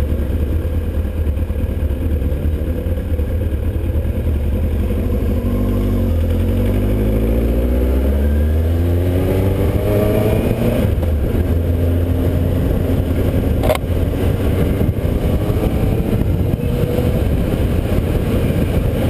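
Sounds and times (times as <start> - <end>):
motorcycle engine accelerating: 0.0 - 19.0
wind rumble on microphone: 8.4 - 19.0
sharp click: 13.6 - 13.8.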